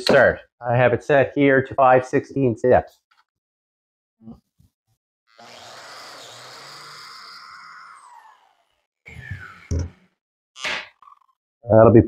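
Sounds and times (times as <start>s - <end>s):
plate joiner motor running: 5.3s - 10.1s.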